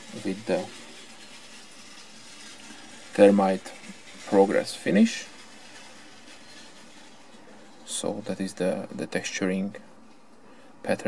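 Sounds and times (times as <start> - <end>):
person speaking: 0.0 - 0.8, 3.0 - 5.4, 7.8 - 9.9
faint background hiss: 0.0 - 11.0.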